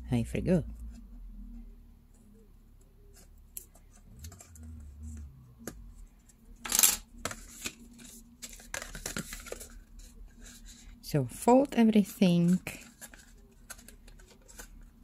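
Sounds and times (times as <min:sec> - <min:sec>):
card rustling and creasing: 0:03.0 - 0:11.0, 0:12.2 - 0:15.0.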